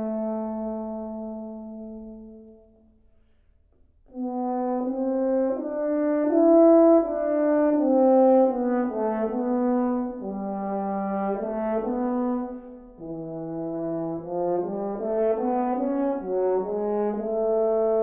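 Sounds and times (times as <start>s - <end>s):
solo french horn melody: 0.0s - 18.0s.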